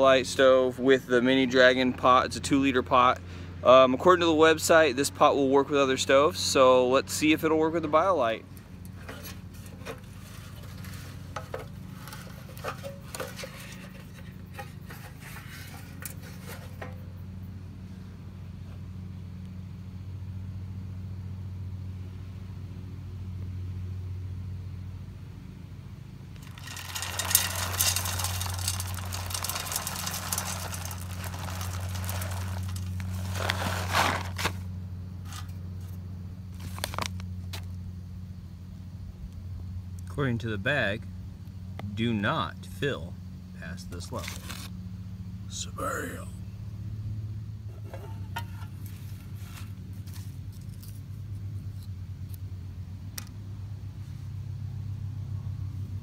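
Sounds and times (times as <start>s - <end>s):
metal clicks and scrapes of stove: 8.8s - 17.0s, 47.7s - 48.9s
wood pellets rattling: 8.8s - 17.0s, 26.4s - 34.7s.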